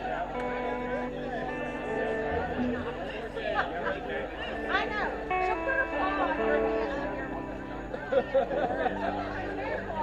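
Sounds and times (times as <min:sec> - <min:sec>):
electric guitars and bass notes: 0:00.0 - 0:10.0
people chattering: 0:00.0 - 0:10.0.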